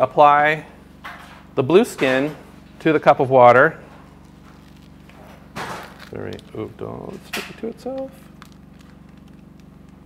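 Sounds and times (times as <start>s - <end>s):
membrane sheet crackling rustle: 4.1s - 6.6s, 7.8s - 10.0s.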